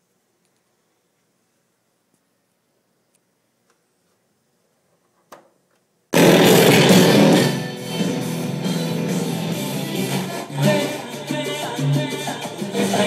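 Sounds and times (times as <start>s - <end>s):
music from stereo speakers: 6.2s - 13.0s.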